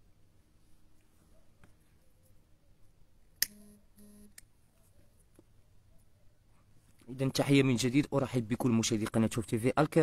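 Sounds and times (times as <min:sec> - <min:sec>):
sharp click: 0:03.4 - 0:03.6
short low beeps: 0:03.5 - 0:04.4.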